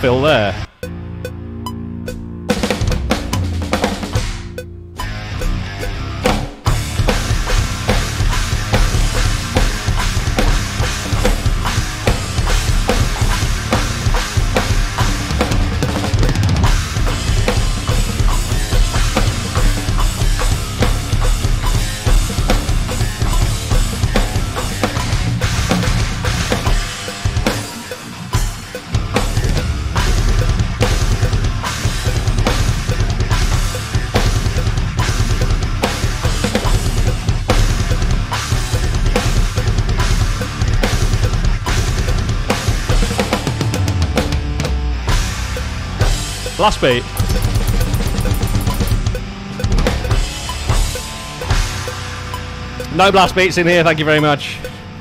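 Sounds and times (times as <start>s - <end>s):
metal backing track: 0.0s - 55.0s
snare drum: 46.6s - 49.0s.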